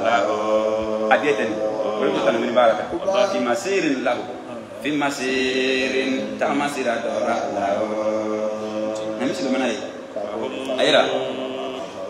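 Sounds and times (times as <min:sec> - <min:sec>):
man chanting into microphone: 0:00.0 - 0:12.0.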